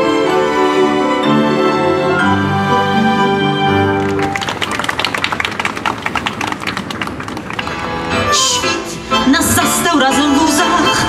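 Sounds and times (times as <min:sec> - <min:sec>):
audience applauding: 0:03.7 - 0:08.4.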